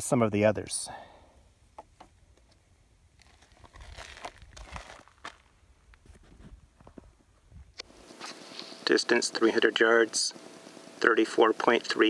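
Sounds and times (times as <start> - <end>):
hands rustling and scraping clay: 3.2 - 7.0.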